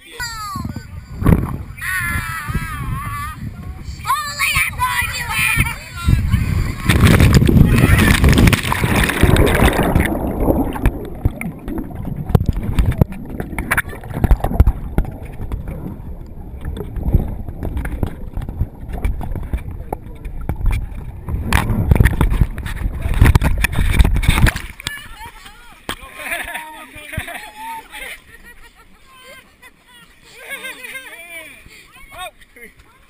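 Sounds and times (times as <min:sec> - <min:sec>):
whitewater splashing: 0:01.0 - 0:33.0.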